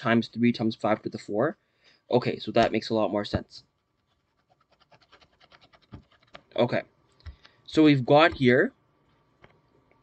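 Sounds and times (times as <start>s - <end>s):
stylus scratching on pen tablet: 3.8s - 6.5s.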